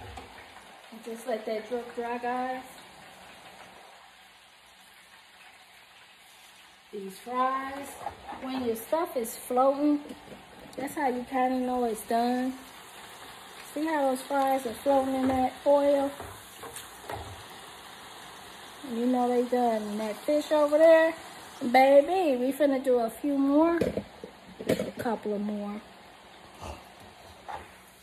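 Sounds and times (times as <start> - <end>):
fries sizzling in hot oil: 0.0 - 28.0.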